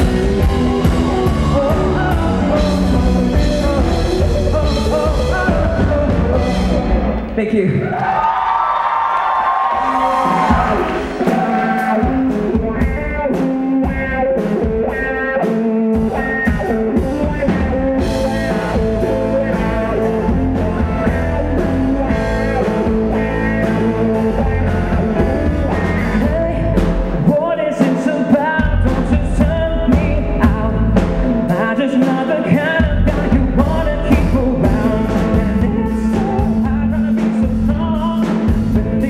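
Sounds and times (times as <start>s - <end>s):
bass guitar: 0.0s - 8.0s, 9.5s - 39.0s
live pop-rock band: 0.0s - 39.0s.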